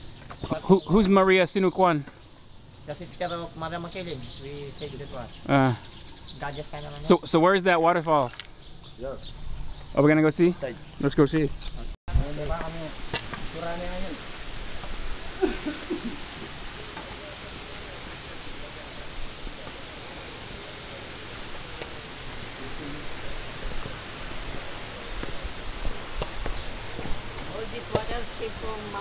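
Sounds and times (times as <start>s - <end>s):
running water rushing: 12.1s - 29.0s.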